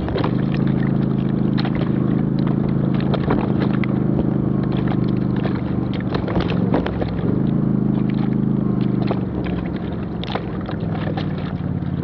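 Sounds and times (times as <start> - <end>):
off-road vehicle engine: 0.0 - 12.0.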